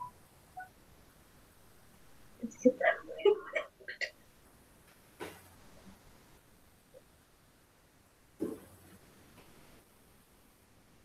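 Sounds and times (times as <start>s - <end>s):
faint beep-like tones: 0.0s - 0.8s.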